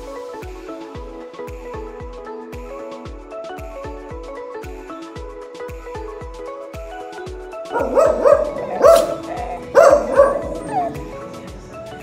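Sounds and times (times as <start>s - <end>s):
background music with steady beat: 0.0s - 12.0s
dog yipping: 7.7s - 11.2s.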